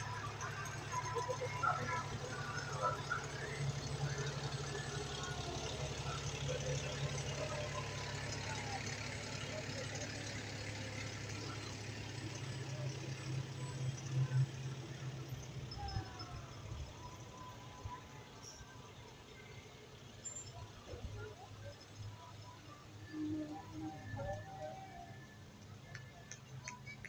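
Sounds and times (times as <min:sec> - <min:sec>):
diesel truck engine rumble: 0:00.0 - 0:27.0.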